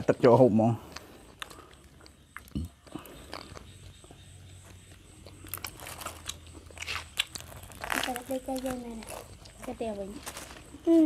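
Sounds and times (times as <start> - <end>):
food crunching and crackling: 0.8 - 10.9.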